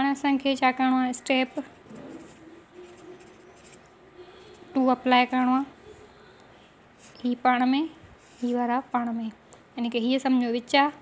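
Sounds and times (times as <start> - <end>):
pen scratching on paper: 1.7 - 4.8.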